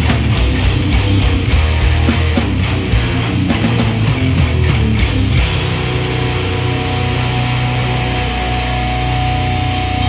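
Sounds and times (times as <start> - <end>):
distorted electric guitars and bass: 0.0 - 10.0.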